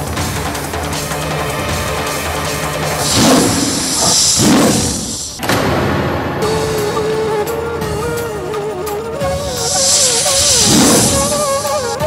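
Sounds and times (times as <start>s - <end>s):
dramatic background music: 0.0s - 12.0s
tiger roar: 1.7s - 5.4s.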